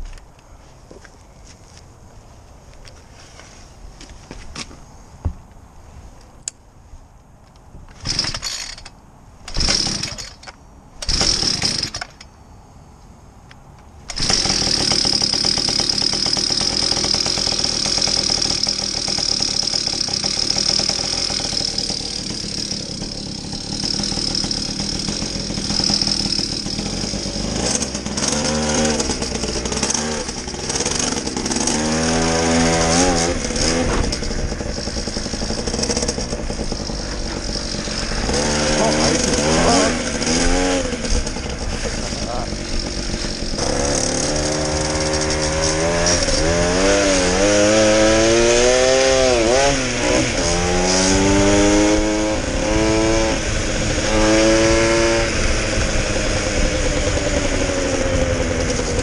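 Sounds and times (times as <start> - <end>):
two-stroke scooter engine revving: 9.5 - 10.4, 11.0 - 12.0, 14.1 - 59.0.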